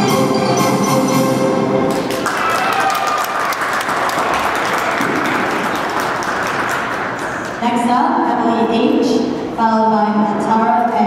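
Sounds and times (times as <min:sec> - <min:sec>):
audience applauding: 0:01.9 - 0:07.6.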